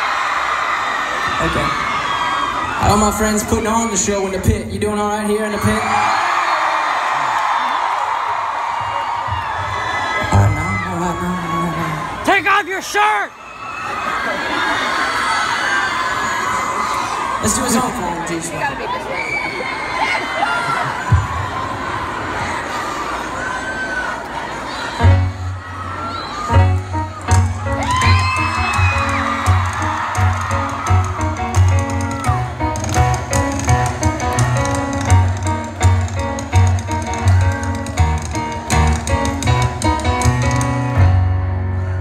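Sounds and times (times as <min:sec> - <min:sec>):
crowd screaming and cheering: 0:00.0 - 0:42.0
live song with heavy bass: 0:10.2 - 0:12.2, 0:26.5 - 0:42.0.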